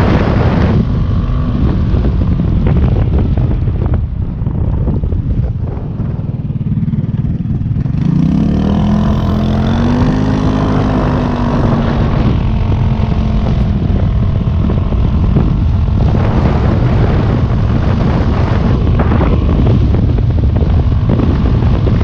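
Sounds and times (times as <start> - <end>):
scooter engine pulling away: 6.1 - 22.0.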